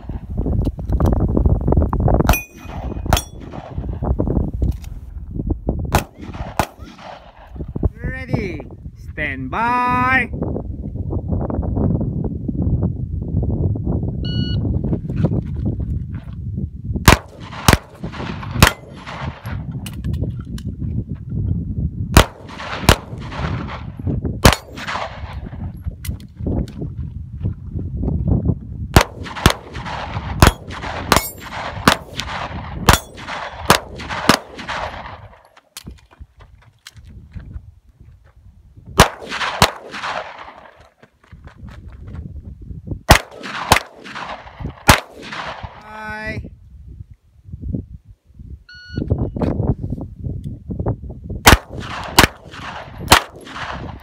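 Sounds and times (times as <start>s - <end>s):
handgun shots: 5.9s - 7.2s, 17.1s - 20.0s, 22.2s - 23.6s, 24.4s - 25.3s, 29.0s - 35.2s, 39.0s - 40.7s, 43.1s - 45.6s, 51.4s - 54.0s.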